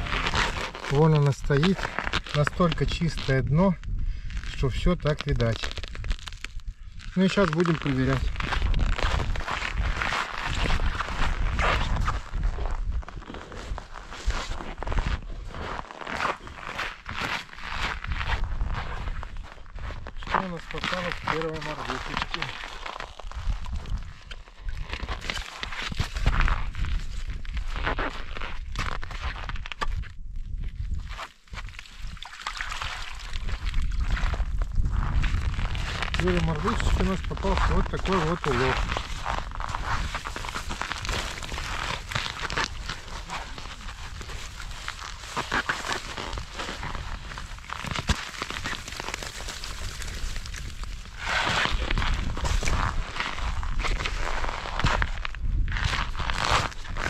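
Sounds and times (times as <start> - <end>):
broken ice crunching and knocking: 5.4 - 30.2, 30.9 - 57.0.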